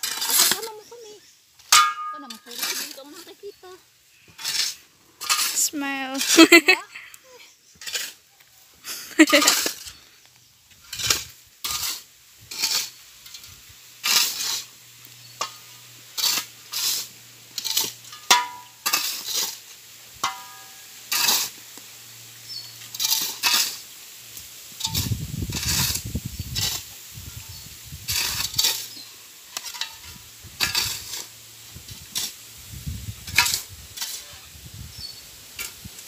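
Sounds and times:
shovels scraping on gravel: 0:00.0 - 0:36.0.

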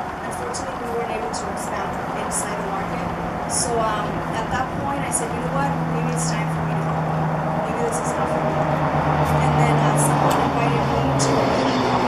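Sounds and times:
low hum: 0:00.0 - 0:12.0
woman speaking into microphone: 0:00.2 - 0:11.7.

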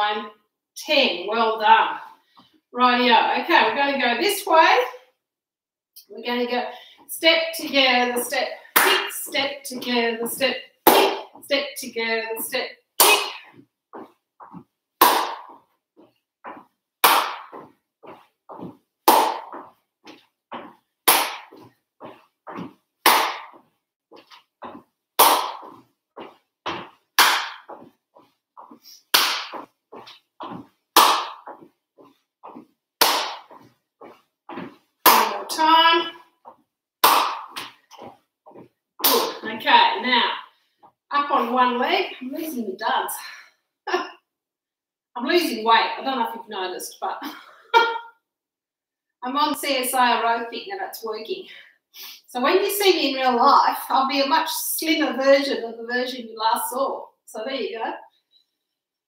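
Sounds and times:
hand claps: 0:17.0 - 0:17.7, 0:23.1 - 0:23.6, 0:37.0 - 0:37.8.

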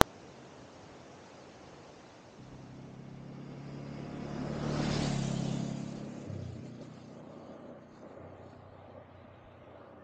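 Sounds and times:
road and wind noise: 0:00.0 - 0:10.0
motorcycle engine running: 0:02.4 - 0:10.0.

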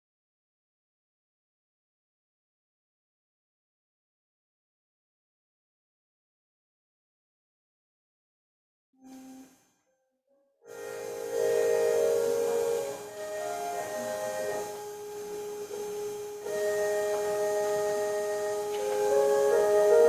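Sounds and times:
keyboard playing slow chords: 0:10.6 - 0:20.0.

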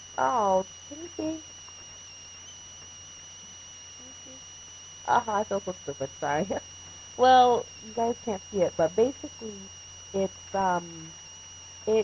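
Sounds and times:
high-pitched electronic whine: 0:00.0 - 0:12.0
low hum: 0:00.0 - 0:12.0.

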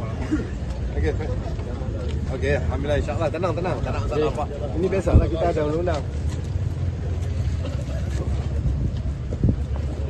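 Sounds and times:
faint crowd voices: 0:00.0 - 0:10.0
low outdoor rumble: 0:00.0 - 0:10.0.

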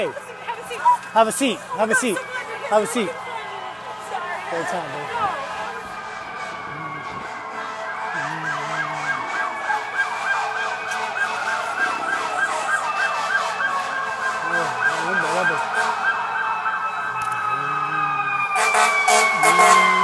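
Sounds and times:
siren slow wail: 0:00.0 - 0:20.0
siren fast yelp: 0:00.7 - 0:20.0.

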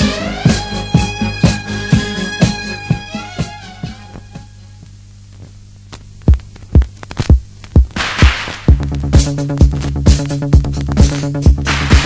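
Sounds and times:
electronic kick drum: 0:00.0 - 0:04.6, 0:06.2 - 0:12.0
steady low hum: 0:00.0 - 0:12.0.

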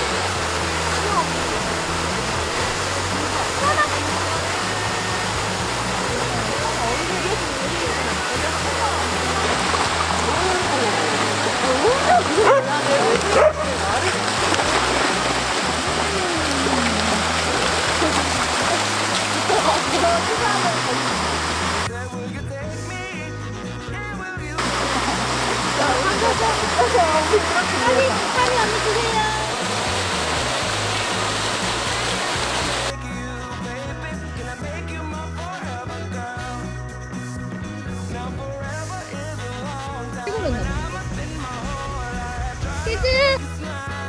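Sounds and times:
waterfall and creek rushing: 0:00.0 - 0:21.9, 0:24.6 - 0:32.9
background music with bass line: 0:00.0 - 0:44.0
dogs barking and whining: 0:10.7 - 0:19.8, 0:25.8 - 0:28.2.

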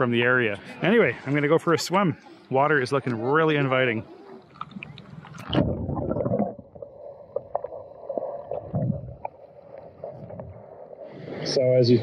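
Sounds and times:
muffled underwater water movement: 0:02.2 - 0:12.0
water splashing: 0:04.0 - 0:11.7.

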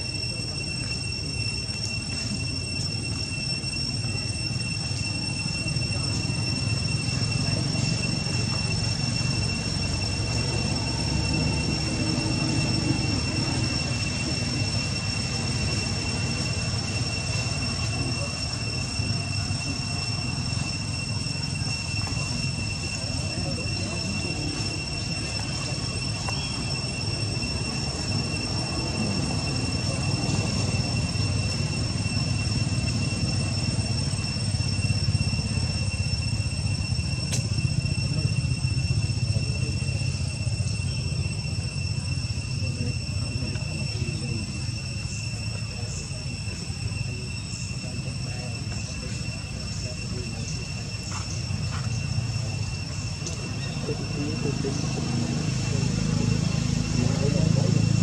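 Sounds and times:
high-pitched insect drone: 0:00.0 - 0:58.0.

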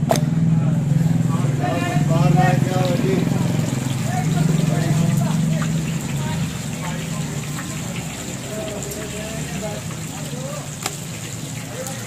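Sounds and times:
people talking indistinctly: 0:00.5 - 0:12.0.

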